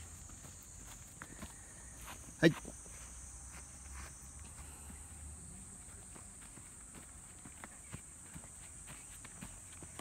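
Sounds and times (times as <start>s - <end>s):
child's footsteps on grass: 0.0s - 10.0s.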